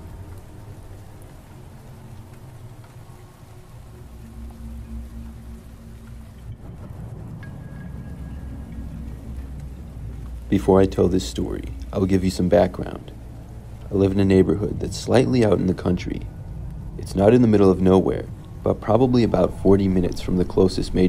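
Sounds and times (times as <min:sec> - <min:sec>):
deep low rumble: 0:00.0 - 0:21.0
rain: 0:00.0 - 0:21.0
soft background music: 0:00.0 - 0:21.0.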